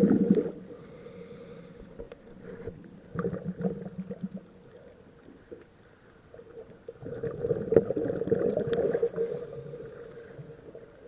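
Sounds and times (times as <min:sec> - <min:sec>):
scuba regulator bubbles underwater: 0:00.0 - 0:00.7, 0:03.1 - 0:05.6, 0:06.3 - 0:11.0.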